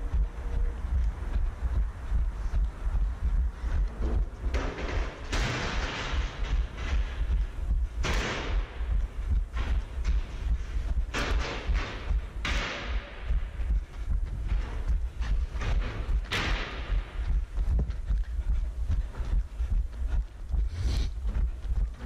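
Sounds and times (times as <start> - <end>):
running footfalls: 0.0 - 22.0
wind buffeting microphone: 0.0 - 22.0.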